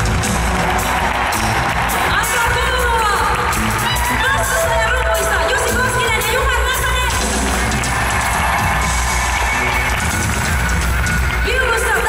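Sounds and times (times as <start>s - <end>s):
audience cheering: 0.0s - 12.0s
live band music with heavy bass: 0.0s - 12.0s.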